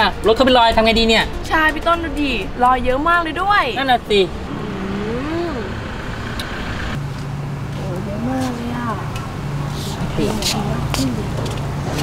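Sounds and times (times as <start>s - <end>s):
outdoor traffic noise: 0.0s - 12.0s
vehicle engine humming: 0.0s - 12.0s.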